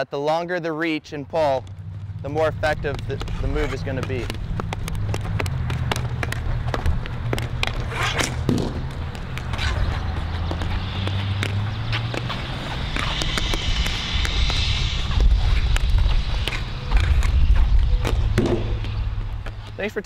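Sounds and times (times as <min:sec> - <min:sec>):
steady low rumble: 0:00.8 - 0:20.0
hockey sticks clacking on ball: 0:02.7 - 0:13.5.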